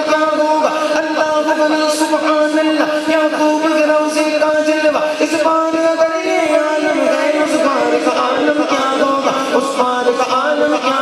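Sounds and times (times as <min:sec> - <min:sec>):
man chanting into microphone: 0:00.0 - 0:11.0.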